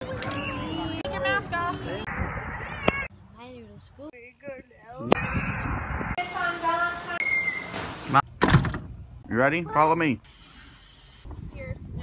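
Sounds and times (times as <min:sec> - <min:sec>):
voices: 0:00.0 - 0:08.3.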